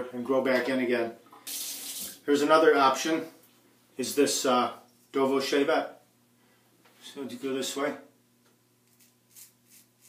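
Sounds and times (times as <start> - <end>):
razor scraping stubble: 8.8 - 10.0.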